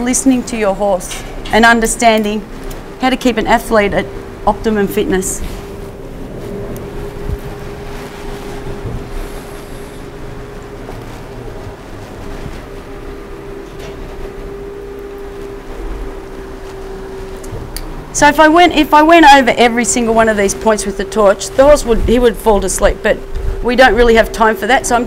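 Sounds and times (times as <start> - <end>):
machine hum: 0.0 - 25.0.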